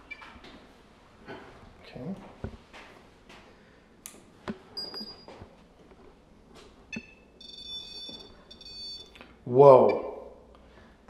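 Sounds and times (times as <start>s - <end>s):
high electronic alarm tone: 6.9s - 9.1s
multi-pitched electronic beeping: 6.9s - 9.1s.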